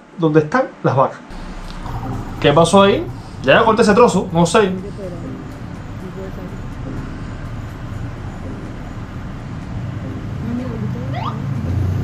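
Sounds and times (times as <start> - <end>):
hum of passing vehicles: 1.3 - 12.0
motorcycle engine approaching: 1.3 - 12.0.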